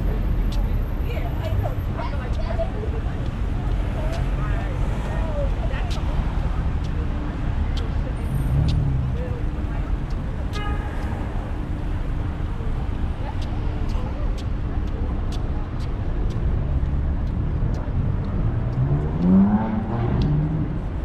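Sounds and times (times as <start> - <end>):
passersby's voices: 0.0 - 21.0
road traffic rumble: 0.0 - 21.0.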